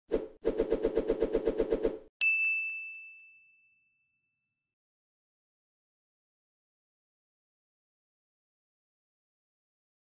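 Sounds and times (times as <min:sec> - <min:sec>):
bright bell-like ding: 0:02.2 - 0:04.4.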